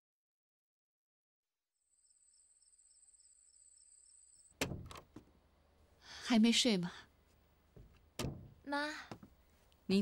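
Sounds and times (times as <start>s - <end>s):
crickets chirping: 1.8s - 4.6s.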